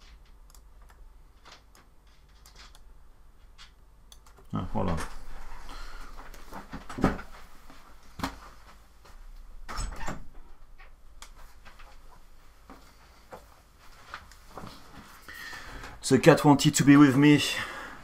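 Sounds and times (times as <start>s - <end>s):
room door opening: 9.6s - 11.0s.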